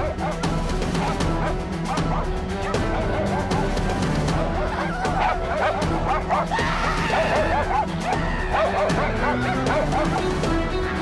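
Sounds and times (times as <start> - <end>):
dog barking and yipping: 0.0 - 10.5
background music: 0.0 - 11.0.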